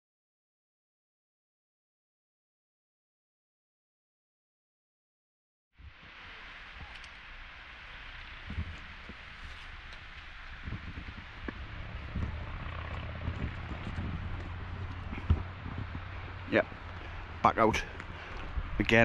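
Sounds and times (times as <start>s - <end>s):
outdoor rushing noise: 5.8s - 19.0s
low rumble: 7.4s - 19.0s
soft low thumps: 10.5s - 18.9s.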